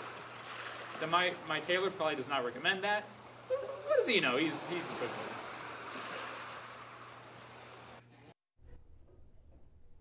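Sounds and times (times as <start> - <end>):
ocean waves washing: 0.0 - 8.0.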